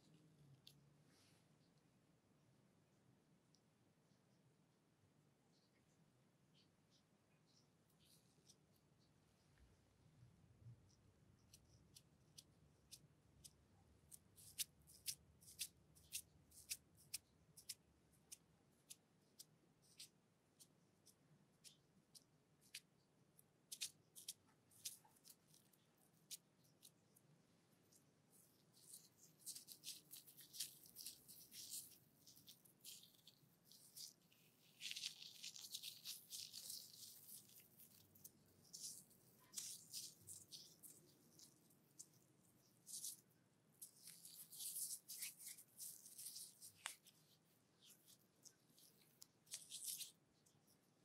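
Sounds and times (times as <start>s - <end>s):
sticky crackles of foamy cream: 28.5s - 50.6s.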